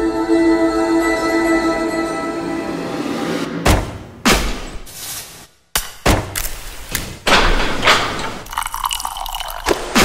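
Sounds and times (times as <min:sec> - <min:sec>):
water pouring into a cup: 0:08.4 - 0:10.0.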